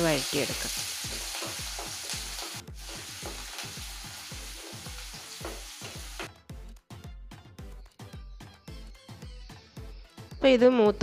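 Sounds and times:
spices sizzling in hot oil: 0.0s - 6.3s.

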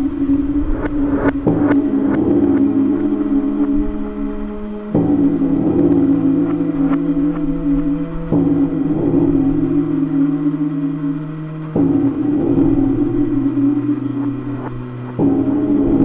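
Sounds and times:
sustained synth chords: 0.0s - 16.0s.

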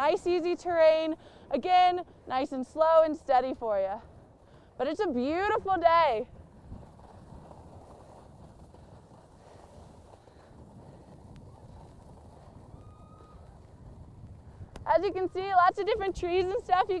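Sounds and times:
skis sliding on snow: 4.8s - 17.0s
wind on microphone: 5.5s - 17.0s.

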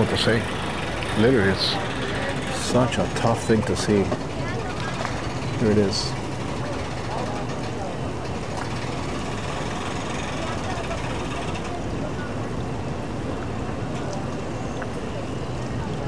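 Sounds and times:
faint voices talking: 0.0s - 16.0s
outboard engine idling: 0.0s - 16.0s.

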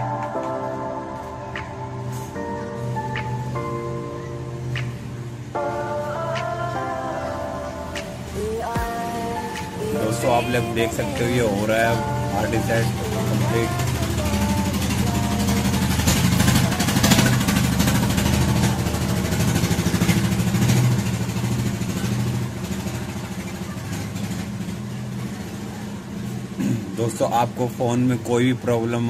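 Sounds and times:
motor rumbling: 7.4s - 28.2s.

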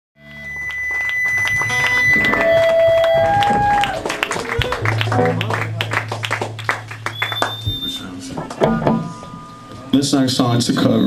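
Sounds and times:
electric guitar notes ringing: 0.2s - 11.0s
room noise: 0.5s - 11.0s.

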